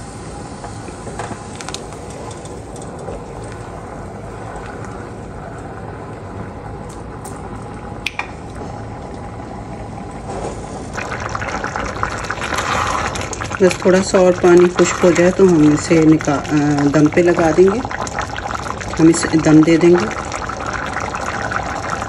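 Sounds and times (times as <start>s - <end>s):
stock boiling in a pot: 0.0s - 22.0s.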